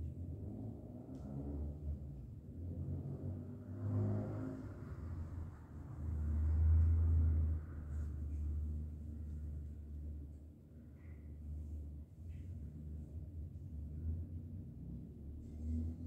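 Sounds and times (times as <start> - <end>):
low rumble: 0.0 - 16.0.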